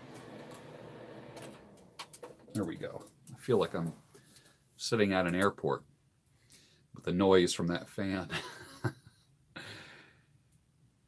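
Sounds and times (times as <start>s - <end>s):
space heater fan humming: 0.0s - 3.0s.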